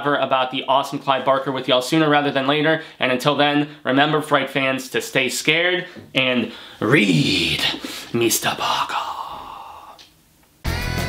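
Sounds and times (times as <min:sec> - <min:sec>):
man exhaling breathily: 0:07.7 - 0:08.1, 0:09.0 - 0:10.1
electric guitar rock music: 0:10.6 - 0:11.0.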